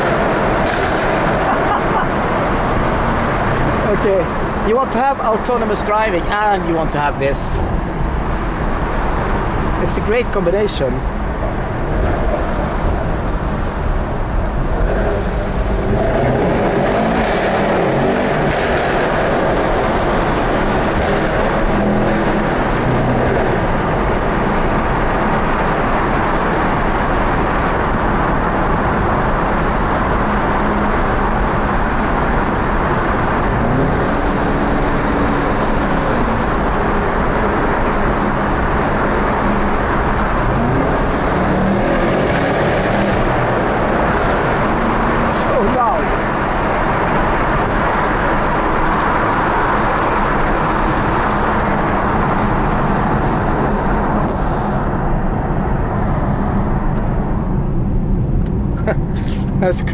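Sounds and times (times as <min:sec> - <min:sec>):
car engine accelerating: 0:00.0 - 0:06.4, 0:11.0 - 0:59.9
road and tyre noise: 0:00.0 - 0:59.9.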